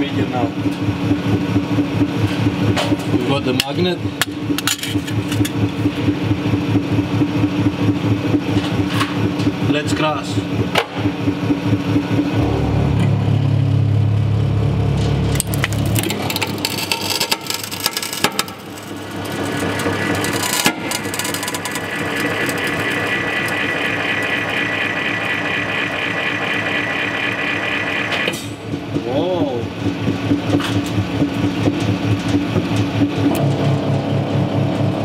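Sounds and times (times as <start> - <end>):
metal frame cracking and creaking: 15.0 - 23.7
hydraulic press pump droning: 15.2 - 29.0.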